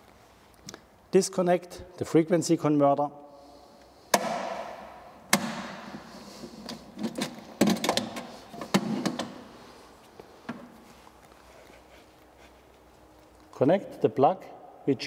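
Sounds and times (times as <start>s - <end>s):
clicks and rattles of housing: 6.6s - 9.4s.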